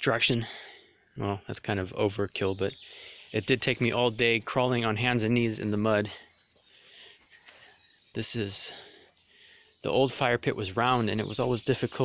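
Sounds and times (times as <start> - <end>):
man's voice: 0.0 - 0.6, 1.2 - 2.8, 3.4 - 6.3, 8.2 - 8.8, 9.8 - 12.0
faint birdsong: 0.0 - 12.0.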